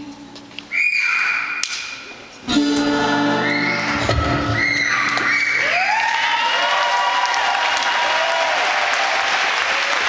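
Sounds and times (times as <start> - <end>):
music: 2.5 - 5.0.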